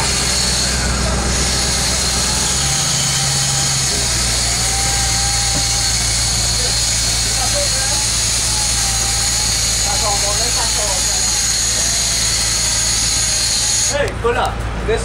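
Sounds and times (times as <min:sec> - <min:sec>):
boat engines droning: 0:00.0 - 0:15.0.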